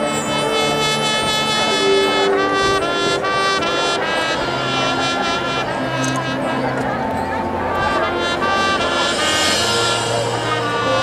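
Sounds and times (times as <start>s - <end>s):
marching band brass playing: 0.0s - 11.0s.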